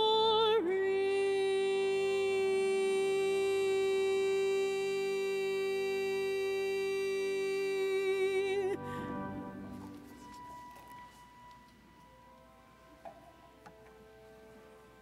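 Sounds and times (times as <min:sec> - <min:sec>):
choir singing held notes: 0:08.4 - 0:11.0.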